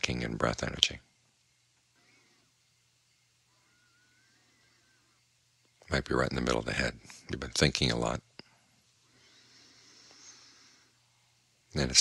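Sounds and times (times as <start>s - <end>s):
low steady hum: 0.0s - 12.0s
faint thin high sounds: 3.1s - 5.3s.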